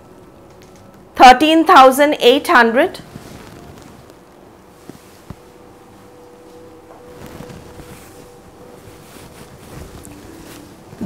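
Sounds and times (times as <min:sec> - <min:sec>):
silk cloth rustling: 0:02.8 - 0:11.0.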